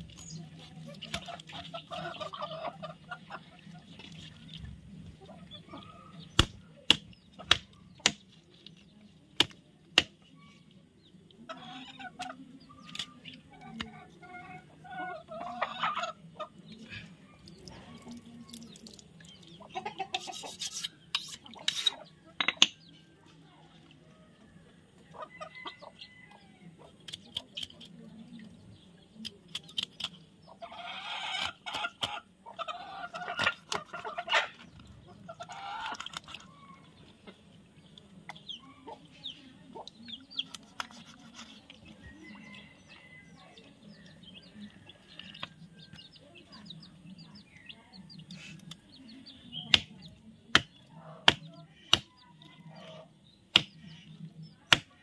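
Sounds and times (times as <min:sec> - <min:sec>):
chickens clucking: 0:00.0 - 0:08.2, 0:10.5 - 0:28.9, 0:30.0 - 0:55.0
knife chopping onto wood: 0:06.4 - 0:08.2, 0:49.7 - 0:49.9, 0:50.5 - 0:52.1, 0:53.5 - 0:53.8, 0:54.7 - 0:54.9.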